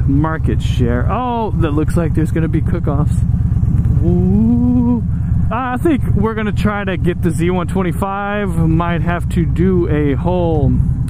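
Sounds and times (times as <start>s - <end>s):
motorcycle engine rumbling: 0.0s - 11.0s
person humming: 3.9s - 5.1s.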